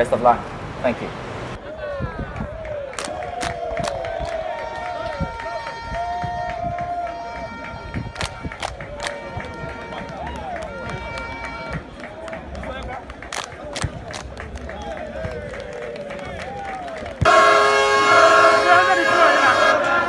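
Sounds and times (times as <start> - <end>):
hand claps: 2.4 - 4.4, 7.9 - 17.3
group chanting and singing: 17.9 - 20.0.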